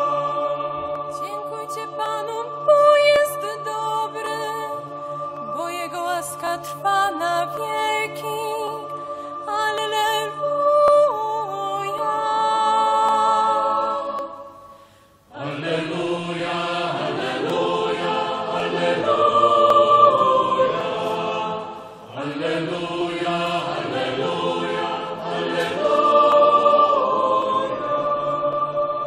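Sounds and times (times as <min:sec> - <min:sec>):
congregation and choir singing: 0:00.0 - 0:29.0.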